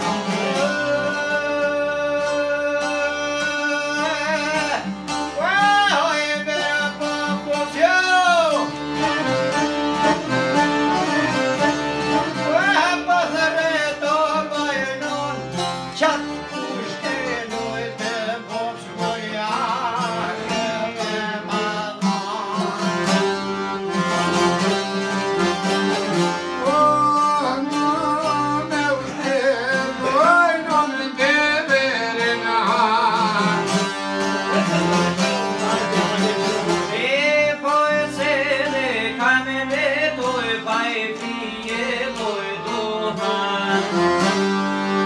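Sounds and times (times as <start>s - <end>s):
man singing ornamented melody: 0.0s - 25.0s, 25.9s - 45.0s
accordion: 0.0s - 45.0s
bowed string instrument: 0.0s - 45.0s
folk ensemble playing: 0.0s - 45.0s.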